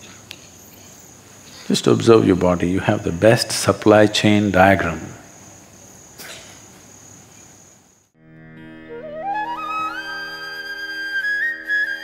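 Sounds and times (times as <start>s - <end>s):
sustained music drone: 8.2s - 12.0s.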